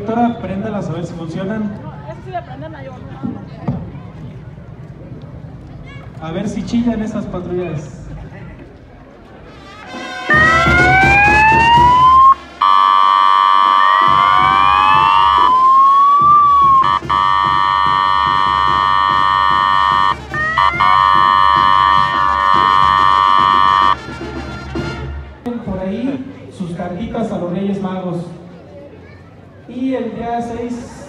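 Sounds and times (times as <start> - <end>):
steady buzzing horn tone: 9.6 - 25.0
siren wail sweeps: 10.3 - 24.0.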